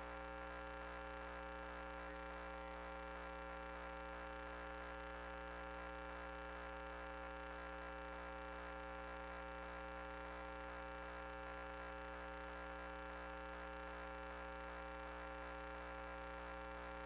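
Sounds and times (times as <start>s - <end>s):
steady electrical hum: 0.0s - 17.0s.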